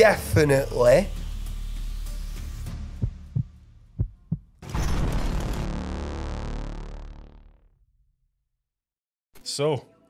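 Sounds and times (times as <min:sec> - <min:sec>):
heartbeat thumps: 0:03.0 - 0:04.6
synthesized music hit: 0:04.6 - 0:08.0.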